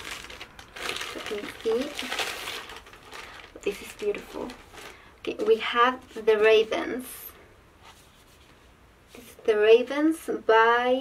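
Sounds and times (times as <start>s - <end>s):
plastic bag crinkling: 0.0s - 6.5s.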